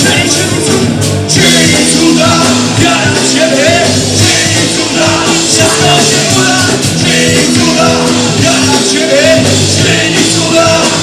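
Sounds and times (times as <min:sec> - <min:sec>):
drum kit: 0:00.0 - 0:11.0
electric guitar: 0:00.0 - 0:11.0
person singing: 0:00.0 - 0:11.0.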